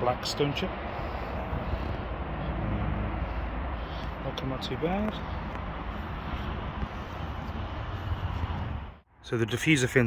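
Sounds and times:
wind on microphone: 1.3 - 3.7, 5.2 - 9.0.

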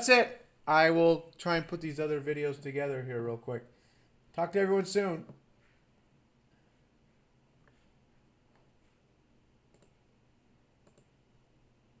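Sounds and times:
computer mouse clicks: 9.7 - 10.0, 10.8 - 11.2.

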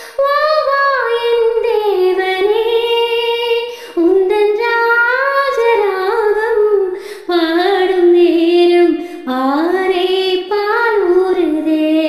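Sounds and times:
woman singing unaccompanied: 0.0 - 12.0.

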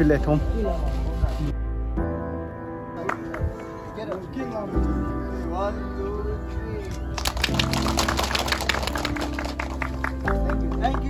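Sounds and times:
background music with sustained tones: 0.0 - 11.0
small group clapping: 3.0 - 4.2, 7.1 - 11.0.

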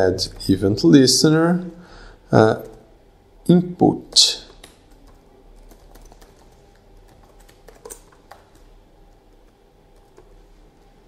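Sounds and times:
laptop keyboard typing: 4.1 - 10.9.

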